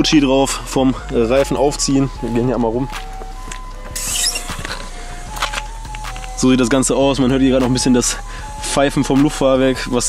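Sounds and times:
air suspension whistling: 0:03.8 - 0:06.4.

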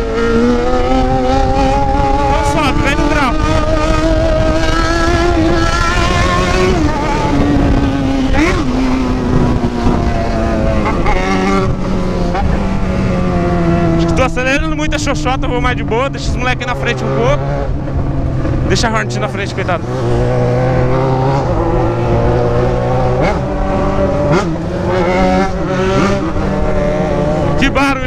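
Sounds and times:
motorcycle engine accelerating: 0:00.0 - 0:28.0.

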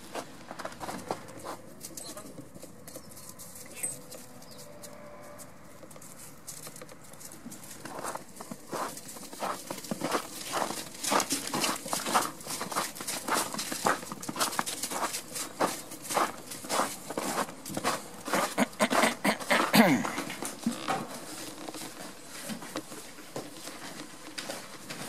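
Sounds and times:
footsteps in snow: 0:03.3 - 0:20.3.

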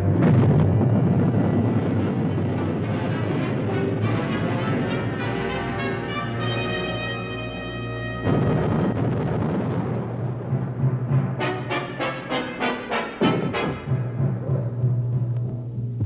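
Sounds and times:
low dense rumble: 0:00.0 - 0:06.5, 0:07.2 - 0:12.5, 0:13.3 - 0:16.0
brass chord: 0:00.0 - 0:09.7, 0:11.1 - 0:14.3
heavy drum and brass strokes: 0:00.0 - 0:15.9.

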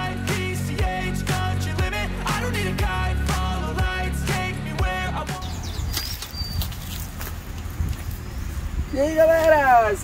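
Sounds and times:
high chirp: 0:05.2 - 0:07.0
wind rumbling on microphone: 0:05.4 - 0:10.0.

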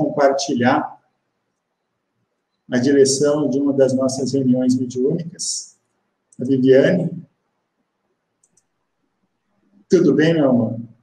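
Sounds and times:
man speaking: 0:00.0 - 0:01.0, 0:02.7 - 0:05.7, 0:06.4 - 0:07.2, 0:09.9 - 0:10.8
faint quick clicks: 0:08.4 - 0:08.8.

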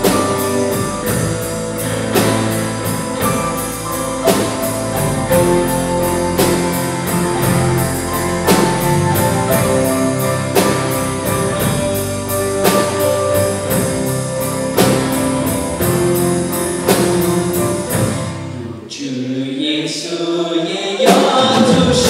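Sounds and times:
drum and cymbal hits: 0:00.0 - 0:18.6
band playing guitars and drums: 0:00.0 - 0:18.9, 0:21.0 - 0:22.0.

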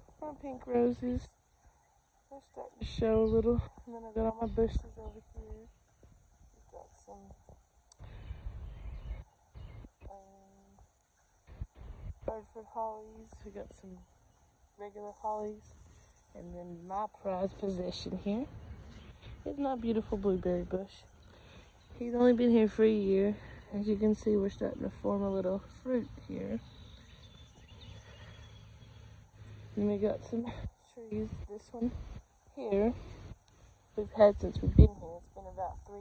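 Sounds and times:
low rumble on microphone: 0:02.8 - 0:14.1, 0:34.0 - 0:36.0.

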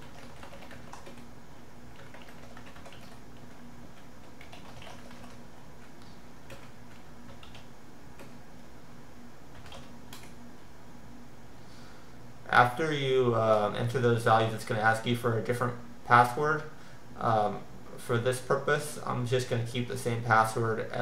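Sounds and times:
computer keyboard typing: 0:00.0 - 0:01.3, 0:01.9 - 0:08.4, 0:09.5 - 0:10.4
steady low hum: 0:00.0 - 0:21.0.

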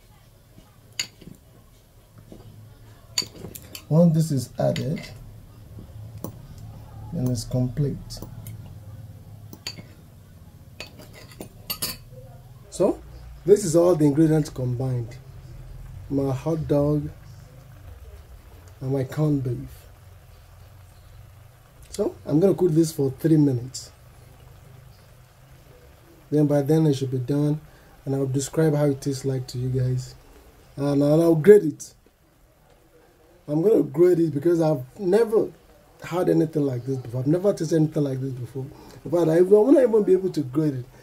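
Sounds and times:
pan simmering hiss: 0:00.0 - 0:41.0
gas stove low rumble: 0:00.4 - 0:31.5.

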